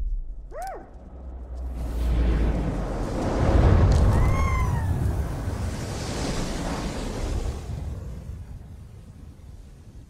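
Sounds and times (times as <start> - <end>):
heavy low rumble: 0.0 - 5.6.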